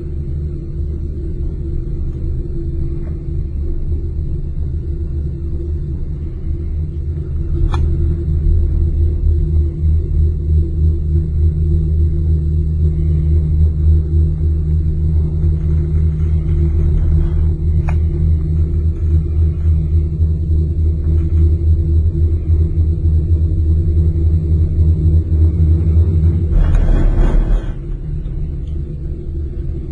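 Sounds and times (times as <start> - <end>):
gondola cabin rumble and hum: 0.0 - 29.9.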